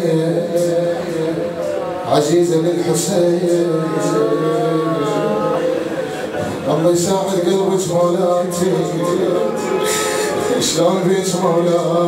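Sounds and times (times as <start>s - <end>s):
man singing long note: 0.0s - 12.0s.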